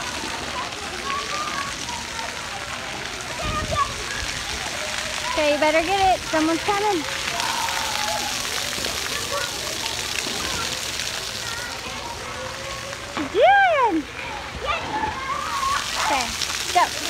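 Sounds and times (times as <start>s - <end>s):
children's voices: 0.0s - 17.0s
fountain jets spraying water: 0.0s - 17.0s.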